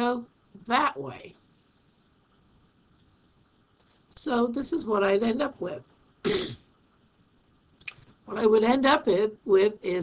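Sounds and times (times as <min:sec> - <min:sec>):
person clearing throat: 0:06.3 - 0:06.6.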